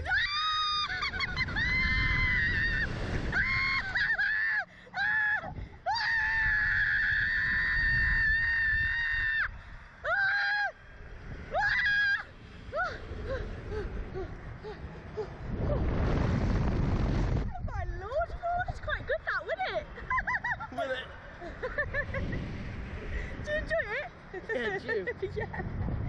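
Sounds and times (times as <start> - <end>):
wind rumbling on microphone: 0.0 - 26.0.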